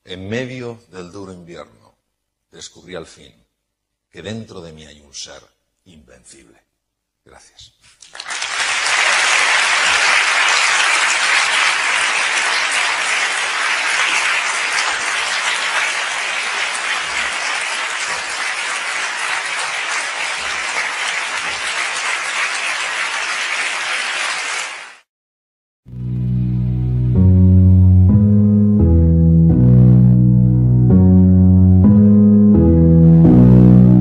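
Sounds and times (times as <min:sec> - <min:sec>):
audience applauding: 0:08.0 - 0:25.1.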